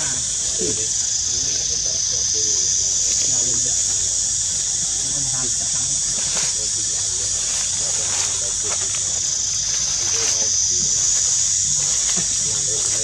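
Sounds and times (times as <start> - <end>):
faint voices: 0.0 - 13.0
insect chorus drone: 0.0 - 13.0.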